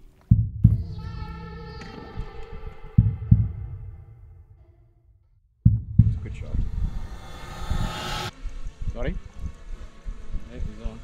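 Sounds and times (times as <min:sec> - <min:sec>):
heartbeat thumps: 0:00.3 - 0:01.0, 0:03.0 - 0:03.8, 0:05.6 - 0:08.1.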